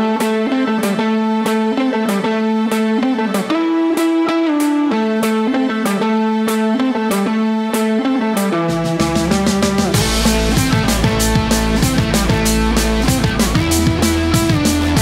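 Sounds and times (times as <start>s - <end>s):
electric guitar picking a riff: 0.0s - 15.0s.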